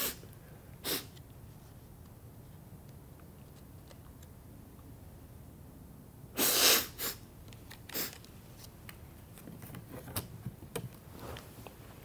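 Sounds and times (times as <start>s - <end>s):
person sneezing: 0.0s - 0.2s, 0.8s - 1.2s, 6.4s - 7.2s.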